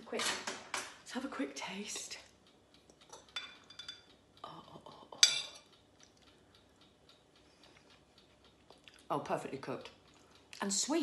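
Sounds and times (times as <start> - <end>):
cutlery ticking: 2.8 - 9.1
fork clinking on ceramic bowl: 3.1 - 4.1.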